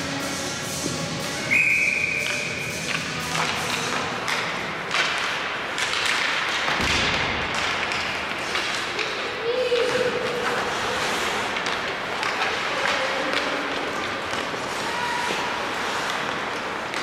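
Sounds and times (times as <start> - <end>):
hockey sticks and puck clacking: 0.2 - 17.0
skates on ice: 0.3 - 17.0
high whistle-like tone: 1.5 - 2.4.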